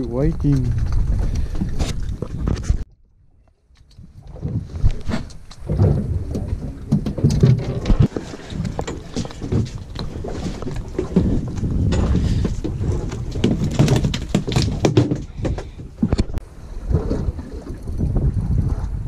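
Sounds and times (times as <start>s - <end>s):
wind buffeting microphone: 0.0s - 2.9s, 4.0s - 19.0s.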